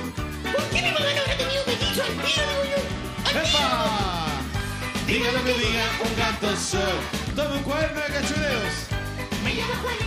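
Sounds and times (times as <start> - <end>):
upbeat children's pop song: 0.0 - 10.0.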